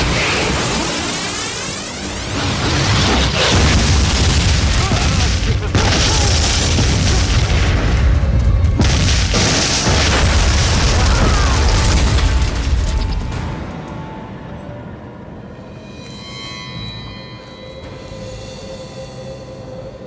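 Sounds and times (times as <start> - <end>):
dramatic music: 0.0 - 20.0
deep continuous rumble: 1.8 - 15.6
explosions booming: 2.3 - 13.8.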